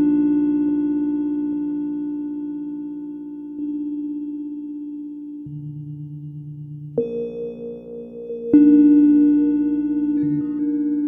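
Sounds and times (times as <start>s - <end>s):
ambient synth drone: 0.0s - 11.0s.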